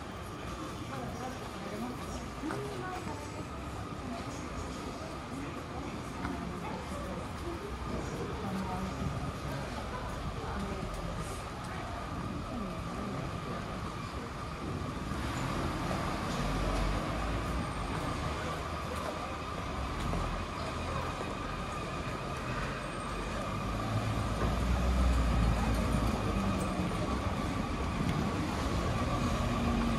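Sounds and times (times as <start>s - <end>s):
traffic noise: 0.0s - 29.9s.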